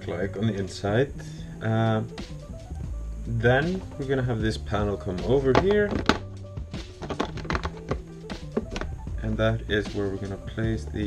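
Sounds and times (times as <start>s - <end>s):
background music with held notes: 0.0s - 11.0s
hard plastic clicks and taps: 7.0s - 8.9s.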